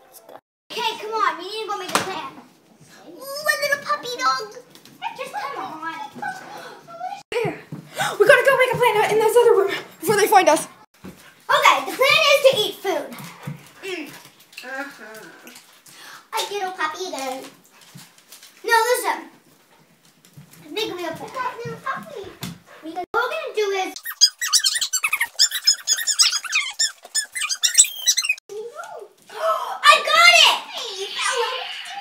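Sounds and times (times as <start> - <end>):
children exclaiming: 23.9 - 32.0
high-pitched squeaks: 24.0 - 28.4.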